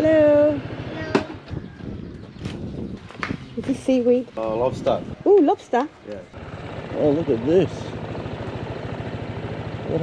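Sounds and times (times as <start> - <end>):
small motorbike engine running: 0.0 - 2.3, 6.4 - 10.0.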